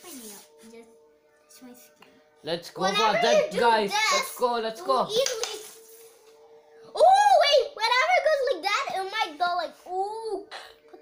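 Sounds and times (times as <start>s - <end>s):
child's voice: 0.0s - 0.9s, 2.8s - 4.4s, 5.0s - 5.8s, 6.9s - 10.6s.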